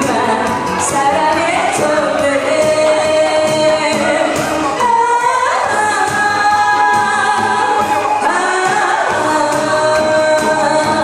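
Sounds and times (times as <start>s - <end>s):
instrumental accompaniment with beat: 0.0s - 11.0s
woman singing: 0.0s - 11.0s.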